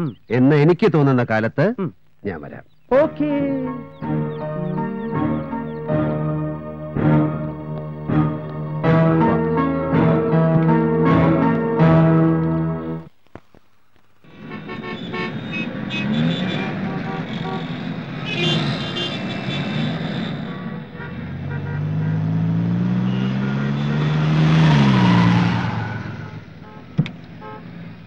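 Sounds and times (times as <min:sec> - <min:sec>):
city traffic: 0:00.0 - 0:28.0
car engine approaching: 0:02.5 - 0:13.1, 0:14.3 - 0:28.0
car horns: 0:14.3 - 0:28.0.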